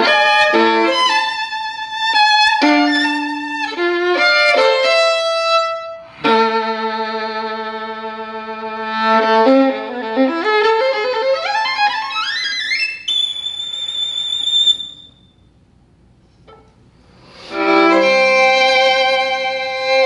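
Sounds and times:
solo violin: 0:00.0 - 0:15.1, 0:17.2 - 0:20.0.

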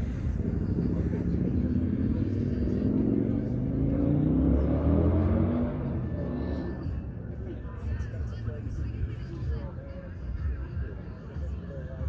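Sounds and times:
vehicle engine accelerating: 0:00.0 - 0:09.3.

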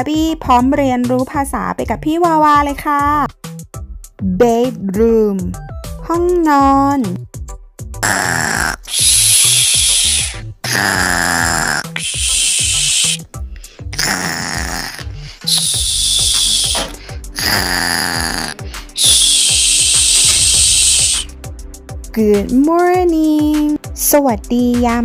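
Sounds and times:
cartoon snoring: 0:08.0 - 0:21.3.

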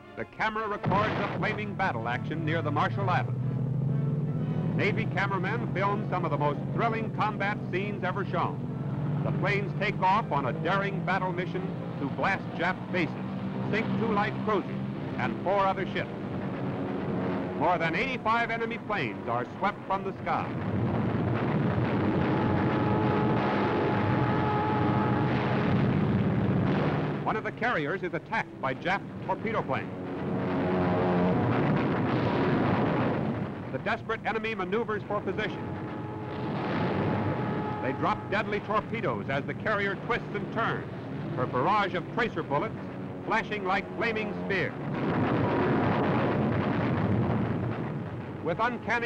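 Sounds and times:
aircraft engines roaring: 0:00.0 - 0:49.0.

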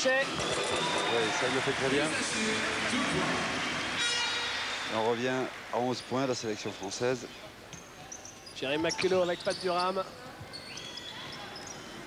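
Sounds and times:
sneaker squeak: 0:07.7 - 0:12.0.

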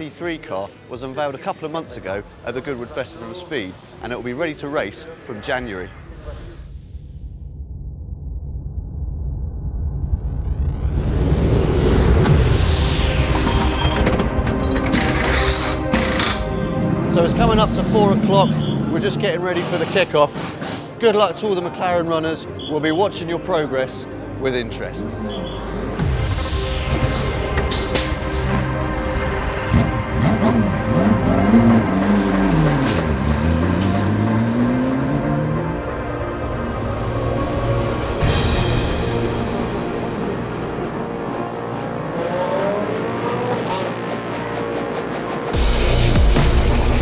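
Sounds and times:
music: 0:00.0 - 0:07.5, 0:10.2 - 0:47.0
race car engines revving: 0:14.2 - 0:21.0, 0:27.7 - 0:47.0.

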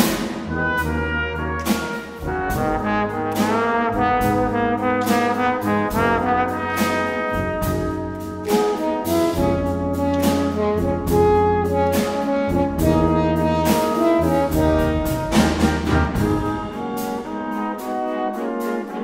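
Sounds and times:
held low bass notes: 0:00.0 - 0:18.4
brass quintet with concert band: 0:00.0 - 0:19.0.

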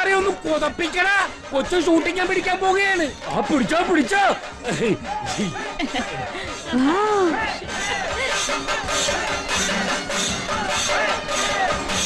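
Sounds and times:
festival crowd shouting and cheering: 0:00.0 - 0:12.0
music: 0:00.0 - 0:12.0.

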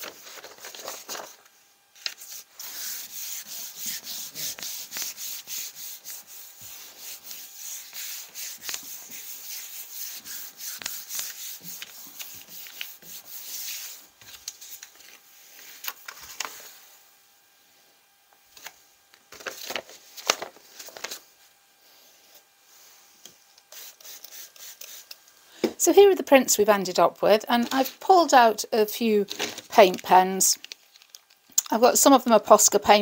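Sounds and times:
hands rubbing paper: 0:02.0 - 0:15.0
paper taps and rustles: 0:18.6 - 0:21.2.

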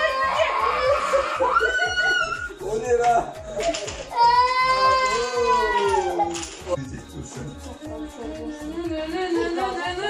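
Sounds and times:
child wailing: 0:00.0 - 0:02.4, 0:04.1 - 0:06.5.

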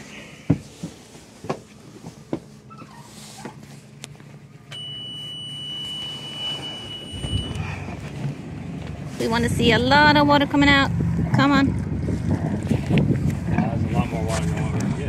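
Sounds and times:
alarm buzzer beeping: 0:04.7 - 0:07.8.

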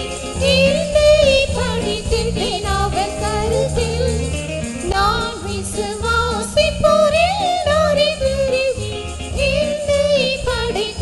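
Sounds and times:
instrumental accompaniment with bass: 0:00.0 - 0:11.0.

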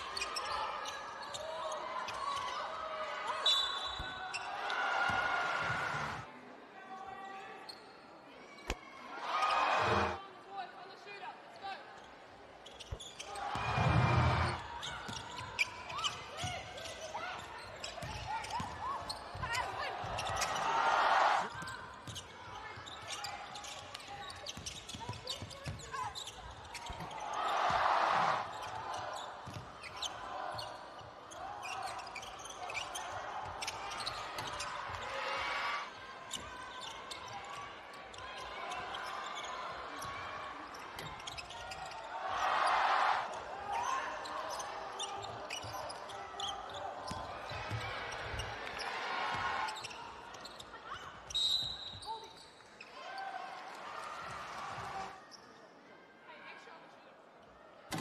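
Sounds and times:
sharp court noises: 0:03.3 - 0:06.3, 0:12.6 - 0:55.3
crowd cheering loudly: 0:04.3 - 0:06.3, 0:09.0 - 0:10.2, 0:13.3 - 0:14.8, 0:19.7 - 0:21.5, 0:27.1 - 0:29.4, 0:42.0 - 0:44.9
basketball bouncing on court: 0:29.4 - 0:30.0, 0:47.0 - 0:48.5.

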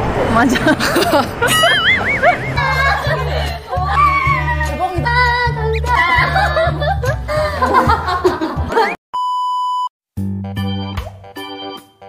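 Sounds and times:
bass line: 0:01.4 - 0:08.3
keyboard chords: 0:01.5 - 0:03.9, 0:10.2 - 0:12.0.

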